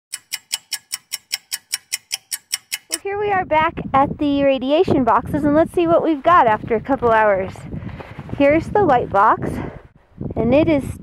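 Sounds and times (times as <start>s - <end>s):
clock ticking: 0.1s - 3.0s.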